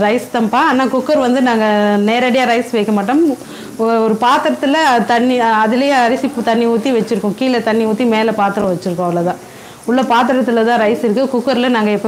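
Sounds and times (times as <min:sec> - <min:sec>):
woman talking: 0:00.0 - 0:12.0.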